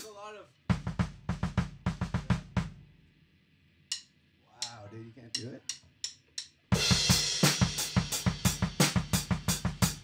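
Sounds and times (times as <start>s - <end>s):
drum kit fill: 0.0s - 2.9s, 3.9s - 10.0s.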